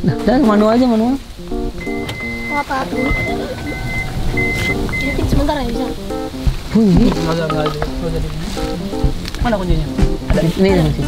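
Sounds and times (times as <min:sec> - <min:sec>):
background music: 0:00.0 - 0:11.0
sliding door warning beeps: 0:01.8 - 0:05.8.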